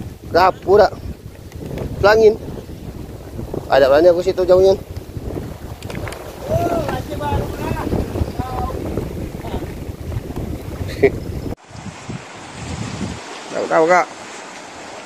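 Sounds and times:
wind buffeting microphone: 0:00.0 - 0:13.9.

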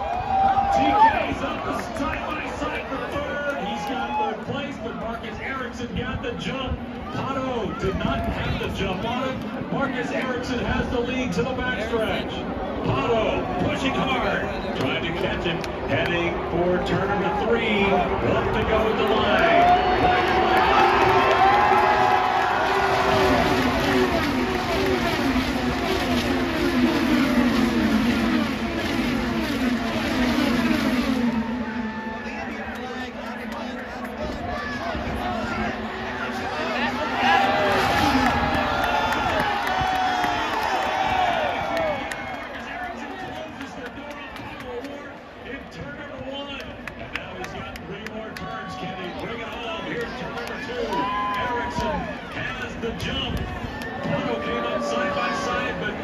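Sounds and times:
crowd cheering: 0:00.0 - 0:56.0
race cars passing at speed: 0:07.0 - 0:56.0.

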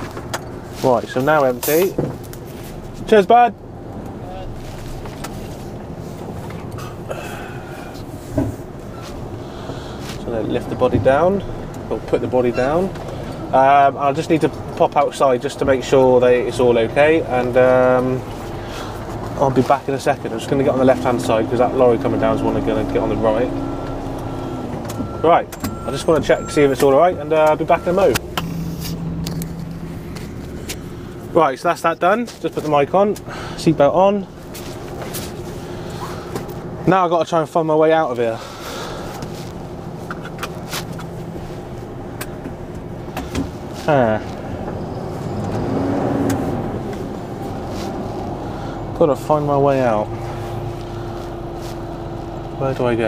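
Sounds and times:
diesel lorry engine running: 0:00.0 - 0:53.0.

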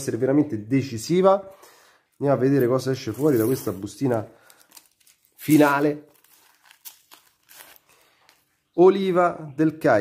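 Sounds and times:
wrapper crinkling: 0:02.6 - 0:08.6.

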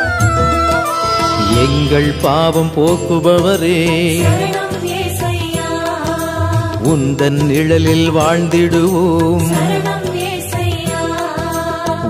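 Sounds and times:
light percussion: 0:00.0 - 0:12.0
low drone note: 0:00.4 - 0:04.9
person singing ornamented notes: 0:00.9 - 0:06.2.

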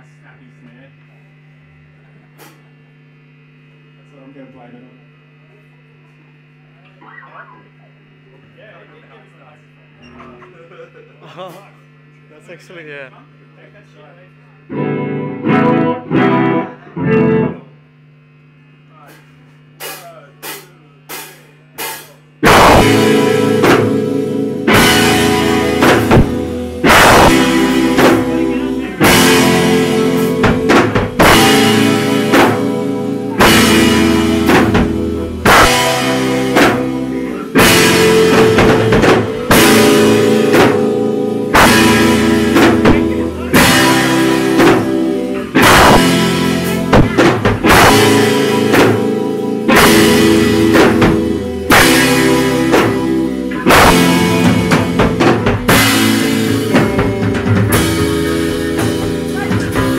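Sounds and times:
amp hum: 0:00.0 - 0:59.9
distorted electric guitar chords: 0:01.0 - 0:08.2, 0:14.6 - 0:59.9
punk band playing: 0:14.7 - 0:17.6, 0:19.1 - 0:59.9.

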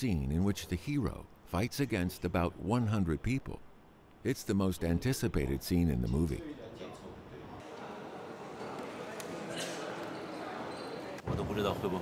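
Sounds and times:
man speaking: 0:04.2 - 0:06.5
background murmur: 0:06.4 - 0:12.0.

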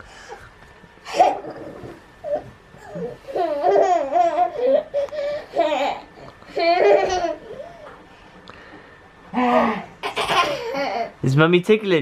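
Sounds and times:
toddler giggling: 0:01.1 - 0:07.9, 0:09.4 - 0:11.1.

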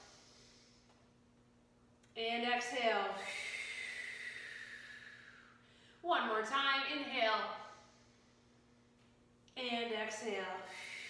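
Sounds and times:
woman exhaling: 0:03.1 - 0:06.0.

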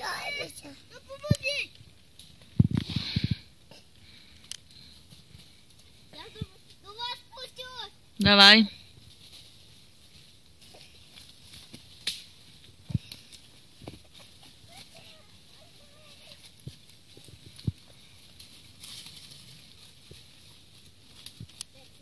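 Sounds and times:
footsteps rustling dry leaves: 0:04.1 - 0:22.0.

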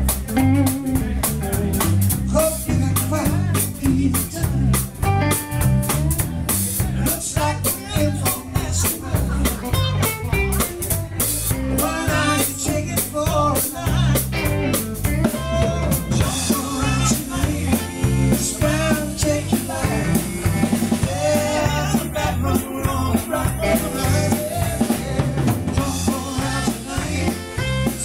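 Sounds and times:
drum kit beat: 0:00.0 - 0:28.0
electric guitar: 0:00.0 - 0:28.0
rock and roll band playing: 0:00.0 - 0:28.0.

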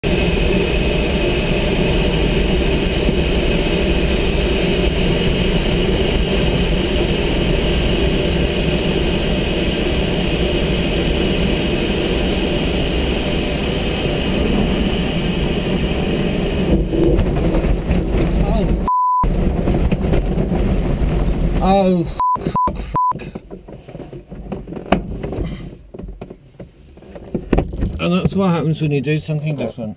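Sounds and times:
airflow rushing in cockpit: 0:00.0 - 0:28.7
short single-tone beep: 0:18.9 - 0:19.3, 0:22.2 - 0:23.2.

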